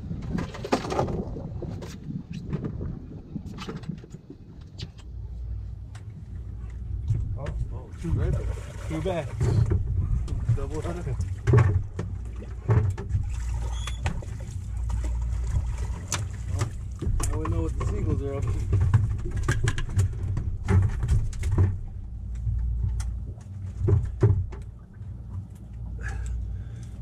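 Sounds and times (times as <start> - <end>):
boat engine low rumble: 0.0 - 27.0
knocks and clicks of fishing gear: 11.2 - 13.3, 16.0 - 25.8.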